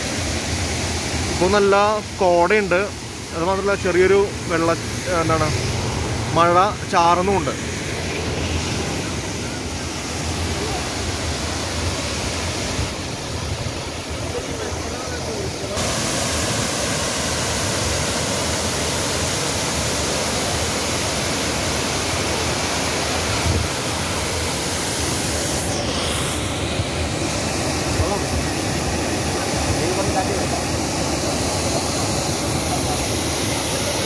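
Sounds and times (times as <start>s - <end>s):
waterfall rushing down rock: 0.0s - 34.0s.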